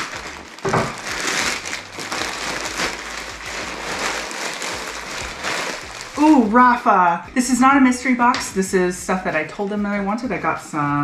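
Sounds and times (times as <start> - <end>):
plastic mailer bag crinkling: 0.0 - 6.7.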